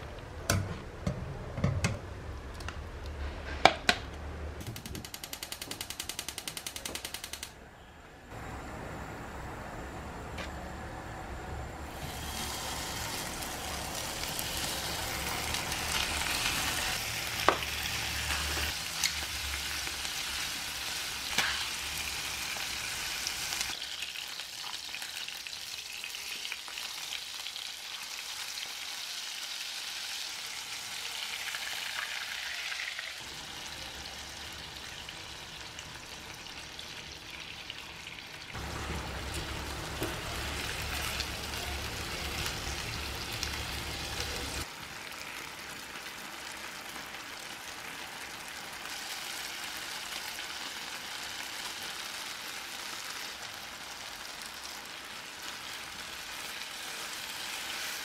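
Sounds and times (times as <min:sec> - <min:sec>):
sharp clicks: 0:04.6 - 0:07.6
food sizzling in a pan: 0:11.9 - 0:58.0.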